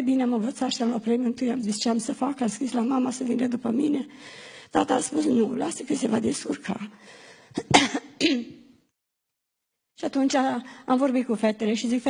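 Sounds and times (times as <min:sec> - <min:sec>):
woman coughing into microphone: 0:07.6 - 0:08.8.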